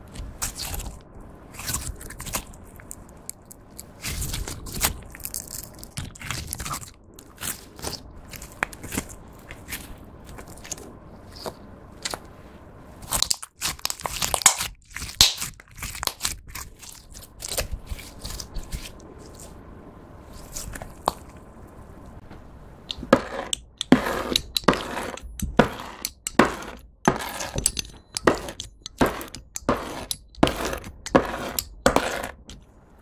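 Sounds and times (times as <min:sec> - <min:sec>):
slime squishing and clicking: 0:13.0 - 0:18.8.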